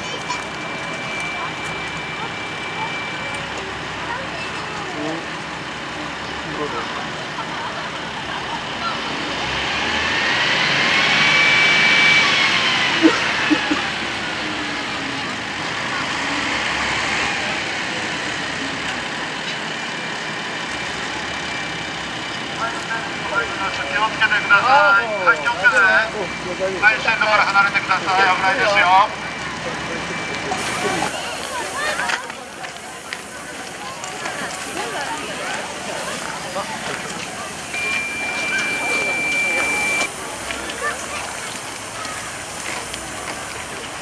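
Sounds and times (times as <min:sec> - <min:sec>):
outdoor noise: 0:00.0 - 0:44.0
rail vehicle whine: 0:00.0 - 0:44.0.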